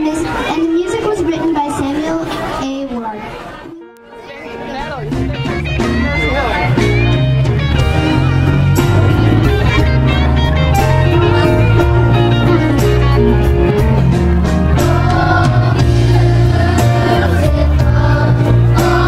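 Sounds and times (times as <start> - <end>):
guitar: 3.7 - 19.0
bass line: 4.9 - 19.0
drum beat: 5.1 - 19.0.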